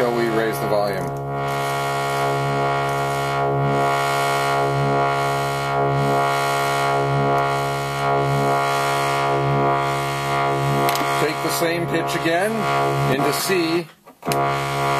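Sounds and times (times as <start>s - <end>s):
filtered sawtooth synthesizer drone: 0.0s - 14.9s.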